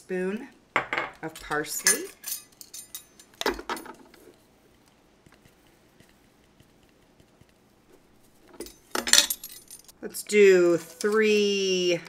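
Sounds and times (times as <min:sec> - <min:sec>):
measuring spoon clinking: 0:01.8 - 0:03.4.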